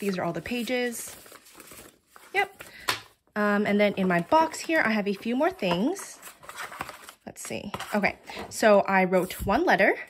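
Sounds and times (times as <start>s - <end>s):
paper and cardboard rustling: 0.0s - 3.0s, 3.8s - 9.7s.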